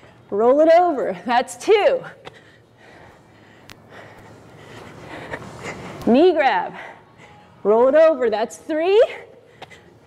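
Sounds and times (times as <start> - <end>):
hard breathing: 2.0 - 7.7, 9.1 - 10.0.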